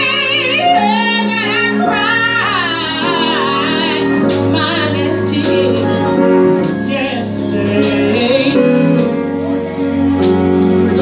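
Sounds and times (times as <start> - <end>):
woman singing with vibrato: 0.0 - 9.2
sustained accompaniment chords: 0.0 - 11.0.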